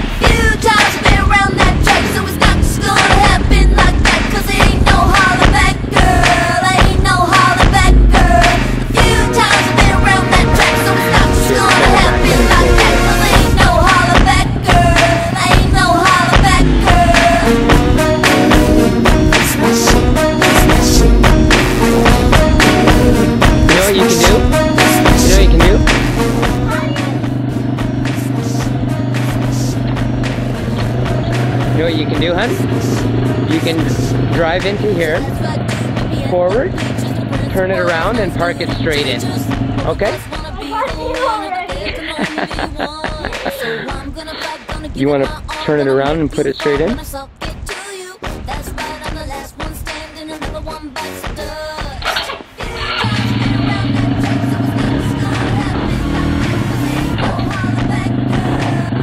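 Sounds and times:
atv engine idling: 0.0s - 18.9s, 19.8s - 41.4s, 52.0s - 59.0s
steady low drone: 0.0s - 39.8s
music playing: 0.0s - 59.0s
small atv engine running: 52.1s - 59.0s.

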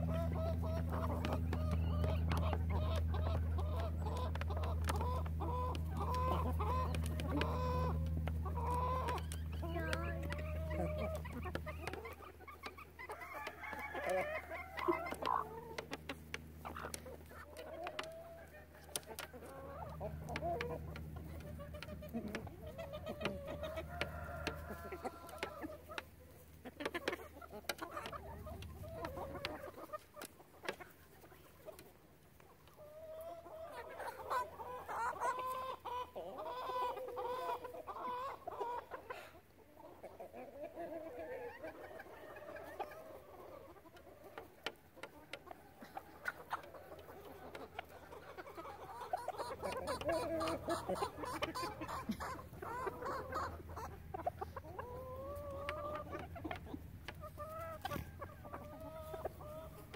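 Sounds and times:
hens clucking: 0.0s - 59.9s
low steady hum: 0.0s - 59.9s.

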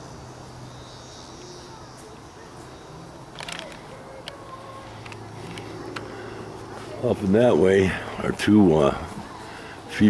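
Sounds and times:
camera handling clicks: 3.4s - 4.4s.

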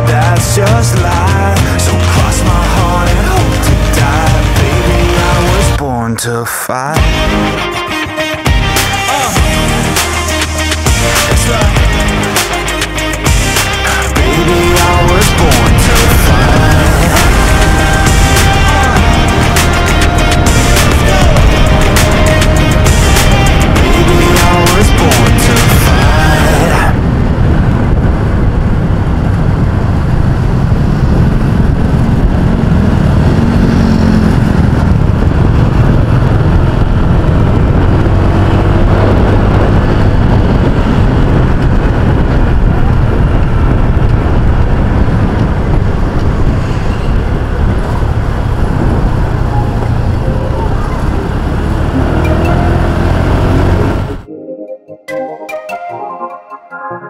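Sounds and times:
background music: 0.0s - 6.2s, 6.8s - 27.0s, 49.3s - 57.0s
tyres on road: 0.0s - 54.3s
scooter engine hum: 7.0s - 54.3s
wind buffeting microphone: 20.4s - 54.3s.

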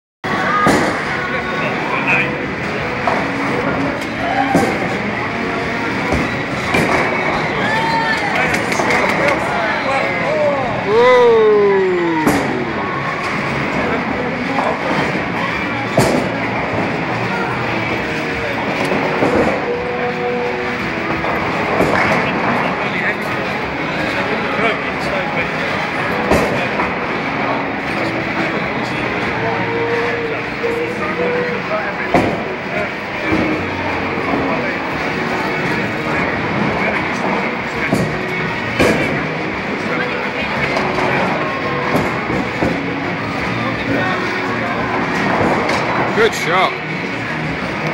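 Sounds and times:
crowd chatter: 0.2s - 47.9s
background music: 0.3s - 47.9s.

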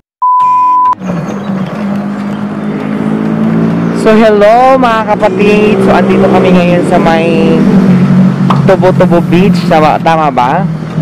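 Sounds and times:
loud test tone beep: 0.2s - 1.0s
engine running with low hum: 1.0s - 11.0s.

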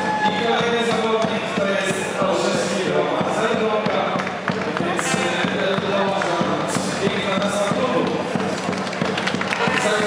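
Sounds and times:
people's voices: 0.0s - 10.0s
sharp knocks or claps: 3.2s - 10.0s.

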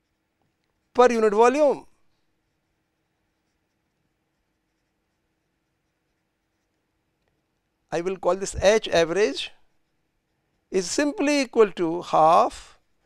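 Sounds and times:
pen scratching on paper: 0.0s - 7.1s, 8.6s - 11.2s.

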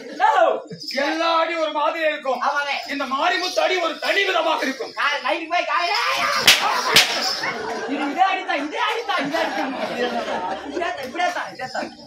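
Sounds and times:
man talking loudly: 0.0s - 6.5s
sharp slaps: 6.1s - 7.4s.

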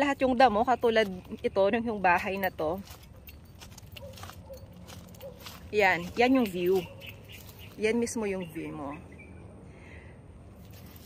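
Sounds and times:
footsteps through grass and gravel: 0.0s - 8.8s, 10.6s - 11.0s.

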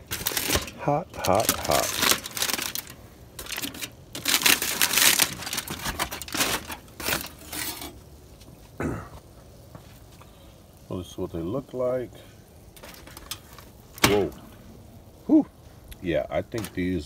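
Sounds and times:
aluminium foil crinkling: 0.0s - 8.5s, 12.6s - 14.7s, 15.6s - 17.0s.

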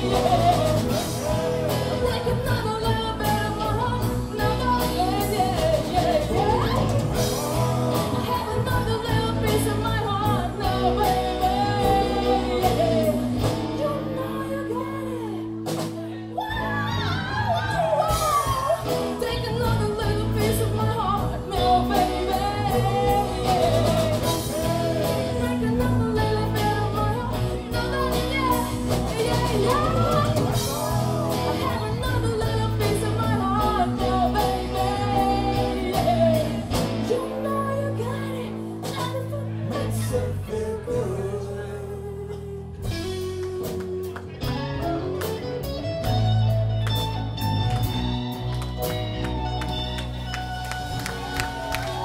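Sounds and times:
drum kit: 0.0s - 41.4s, 42.7s - 52.0s
person singing: 0.0s - 45.9s
bass guitar: 0.0s - 52.0s
electric guitars: 0.0s - 52.0s.

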